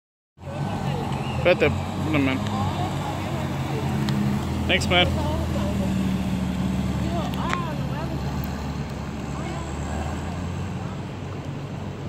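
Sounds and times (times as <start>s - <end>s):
car engine at low revs: 0.4s - 12.0s.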